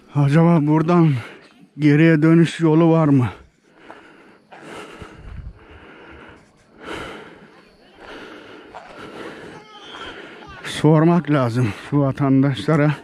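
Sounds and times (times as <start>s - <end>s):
man breathing heavily: 1.0s - 1.7s, 3.2s - 10.8s, 11.6s - 12.0s.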